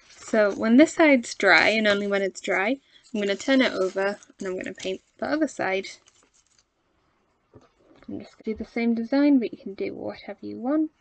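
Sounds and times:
paper rustling: 1.5s - 6.7s.

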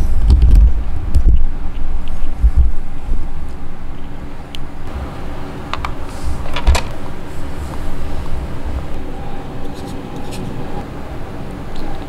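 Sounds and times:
loud uneven low rumble: 0.0s - 12.0s.

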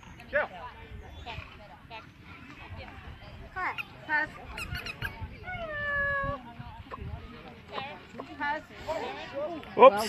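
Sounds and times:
low background murmur: 0.0s - 10.0s.

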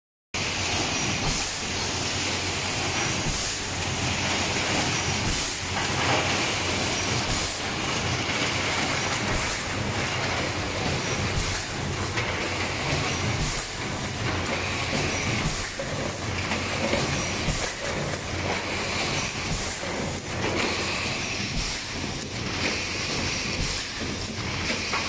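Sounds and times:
machine clatter and hum: 0.4s - 25.0s.

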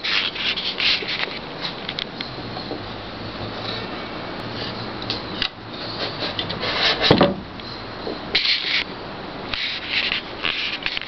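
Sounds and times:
rubbing and scraping handling noise: 0.0s - 2.9s, 5.8s - 7.4s, 9.5s - 11.0s.

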